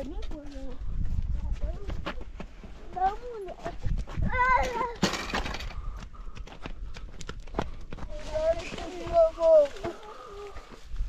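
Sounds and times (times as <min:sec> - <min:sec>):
footsteps on stony ground: 0:00.0 - 0:11.0
children calling out: 0:04.3 - 0:05.0.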